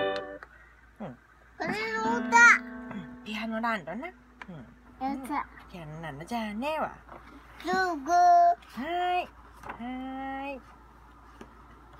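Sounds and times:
electronic keyboard notes: 0.0 - 0.4, 1.9 - 4.8.

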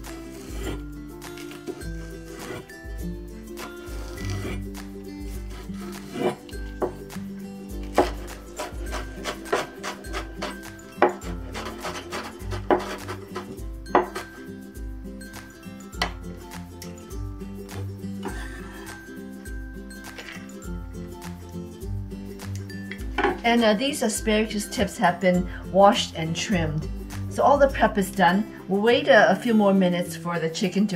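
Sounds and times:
background music: 0.0 - 30.9
cleaver striking cutting board: 7.9 - 14.4.

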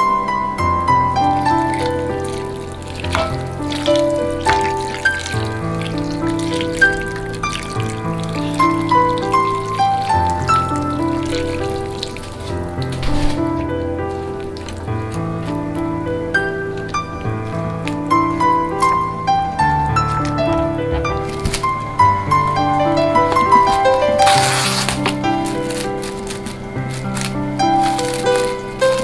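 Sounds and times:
background music melody: 0.0 - 29.0.

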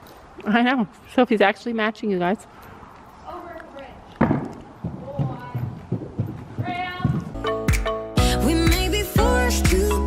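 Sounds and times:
horse hooves on sand: 0.0 - 7.4.

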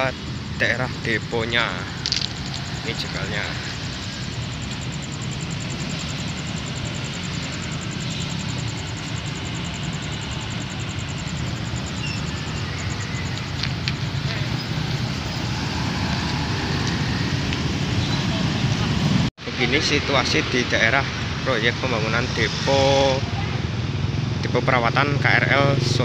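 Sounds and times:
motorcycles and cars driving: 0.0 - 26.0.

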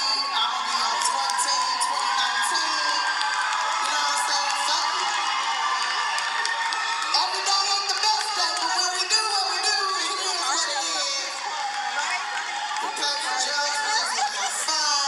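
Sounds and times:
audience cheering: 0.0 - 15.0
crowd talking and shouting: 0.0 - 15.0.

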